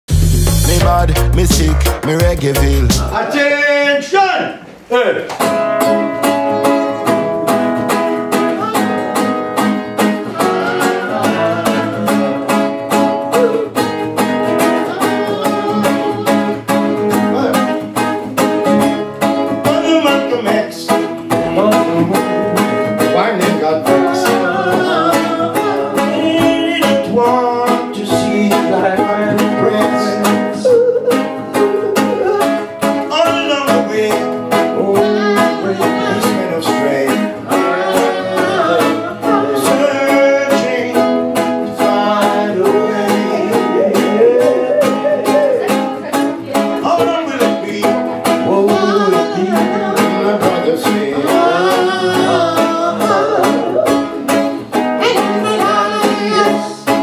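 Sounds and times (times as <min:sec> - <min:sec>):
person singing: 0:00.1 - 0:03.2, 0:08.2 - 0:18.0, 0:18.6 - 0:57.0
acoustic guitars strumming reggae: 0:00.1 - 0:57.0.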